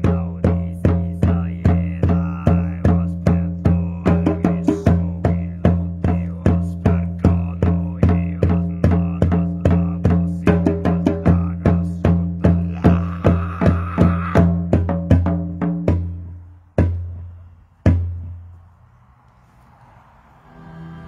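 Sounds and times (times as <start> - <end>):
frame drum booming: 0.0 - 18.4.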